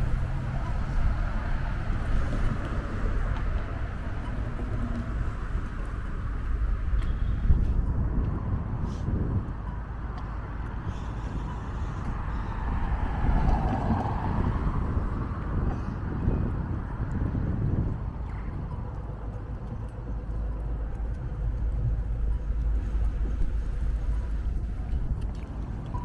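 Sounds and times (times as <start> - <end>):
vehicle passing: 0.0 - 7.5, 10.4 - 26.0
road traffic rumble: 0.0 - 26.0.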